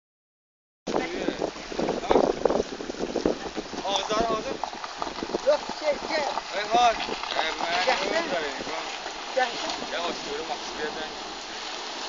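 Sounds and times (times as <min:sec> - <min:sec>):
voices talking: 0:00.9 - 0:11.8
floodwater flowing: 0:00.9 - 0:12.0
wind buffeting microphone: 0:00.9 - 0:12.0.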